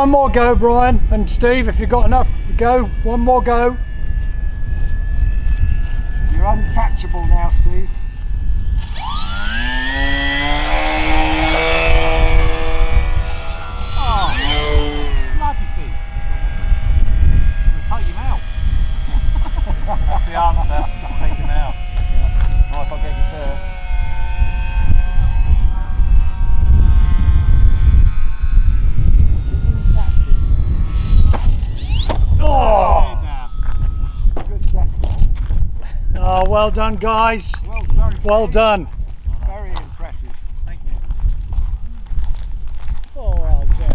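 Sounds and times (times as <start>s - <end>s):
model aeroplane motors whining: 0.0s - 35.4s
wind rumble on microphone: 0.0s - 43.9s.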